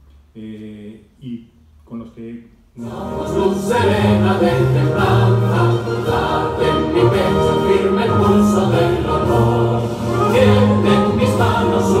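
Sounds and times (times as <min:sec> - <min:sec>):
choir singing long held notes: 0:02.8 - 0:12.0.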